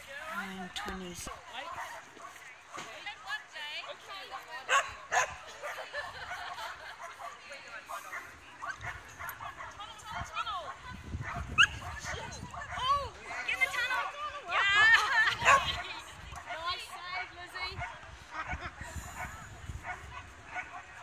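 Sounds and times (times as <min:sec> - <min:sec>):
people's voices: 0:00.0 - 0:21.0.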